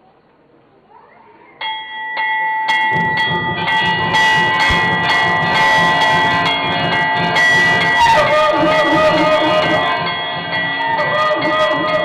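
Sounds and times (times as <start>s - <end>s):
low rhythmic sounds: 1.5s - 12.0s
large bell ringing: 1.6s - 12.0s.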